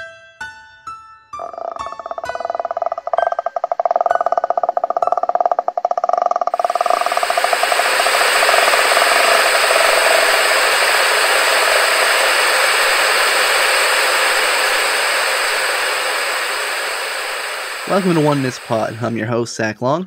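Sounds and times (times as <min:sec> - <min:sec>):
rapidly pulsing tone: 0:01.4 - 0:19.3
static hiss: 0:06.5 - 0:19.4.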